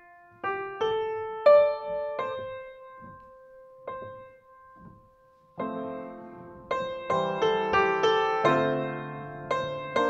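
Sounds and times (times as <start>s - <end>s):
slow quiet piano music: 0.0s - 10.0s.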